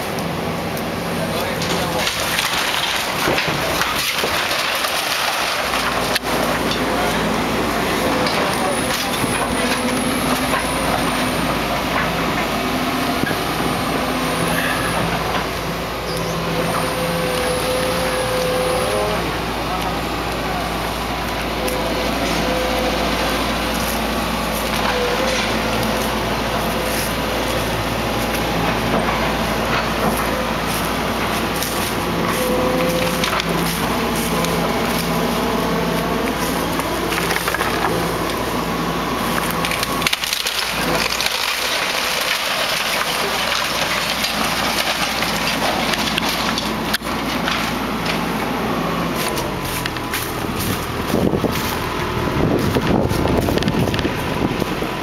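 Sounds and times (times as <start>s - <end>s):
excavator diesel engine under load: 0.0s - 55.0s
timber cracking and splintering: 1.5s - 7.2s, 39.3s - 48.3s.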